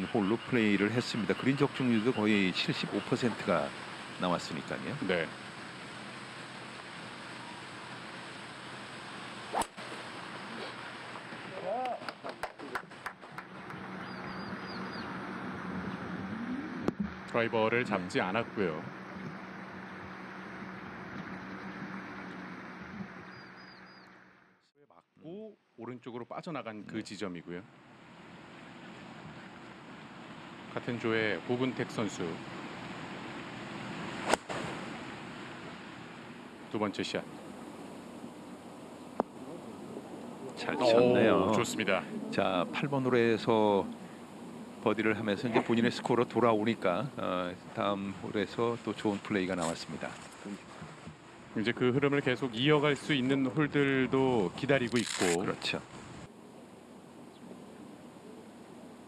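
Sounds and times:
outdoor background noise: 0.0 - 59.0
golf club striking ball: 9.5 - 10.0, 34.2 - 34.9
brief voice: 40.6 - 41.6.

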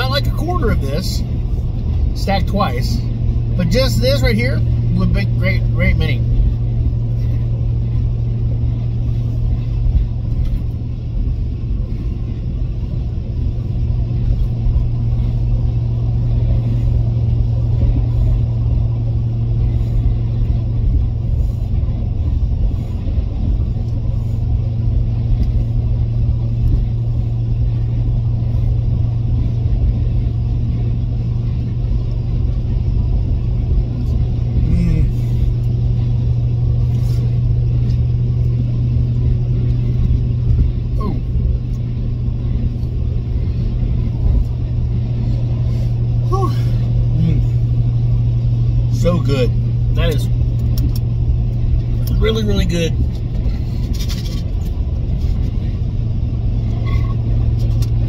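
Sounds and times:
road rumble: 0.0 - 58.0
vehicle engine drone: 0.0 - 58.0.

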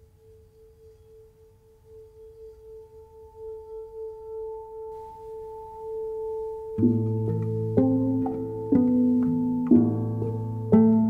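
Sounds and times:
flute long soft note: 0.0 - 11.0
guitar plucked chords: 5.0 - 11.0.

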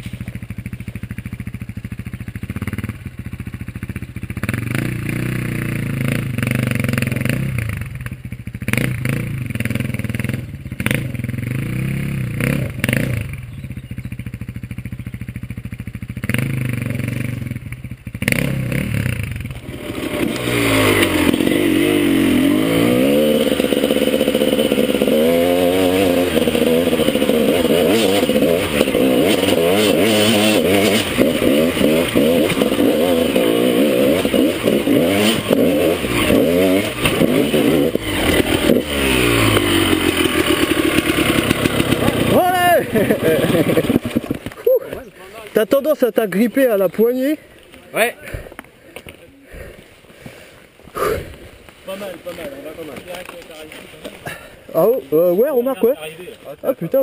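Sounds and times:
dirt bike engine revving: 0.0 - 48.6, 49.5 - 57.0.

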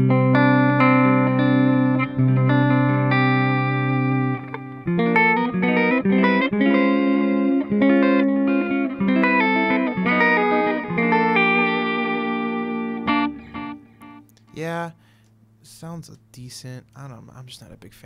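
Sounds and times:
clean electric guitar: 0.0 - 16.3.

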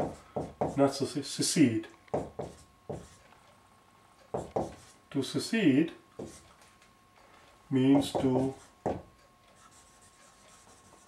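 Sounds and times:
marker writing on whiteboard: 0.0 - 0.9, 2.1 - 3.3, 4.3 - 5.0, 6.2 - 6.6, 7.9 - 11.0.

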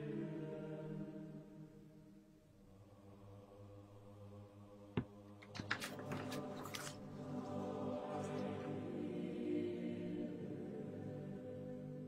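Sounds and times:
faint choir singing: 0.0 - 12.0.

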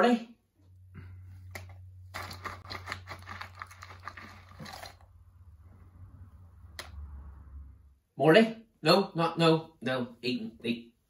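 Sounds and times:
peanut shells crunching: 1.5 - 5.1.

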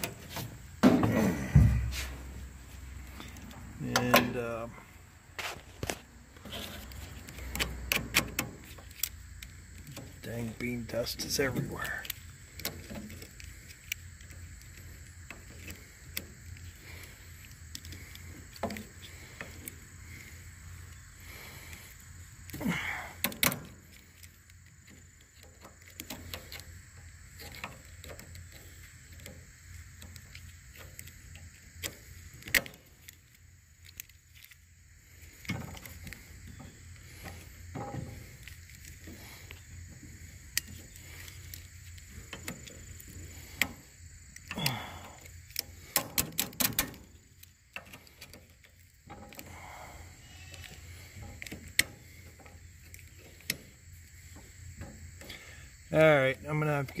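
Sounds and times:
pliers clicking and scraping metal: 40.4 - 49.5.

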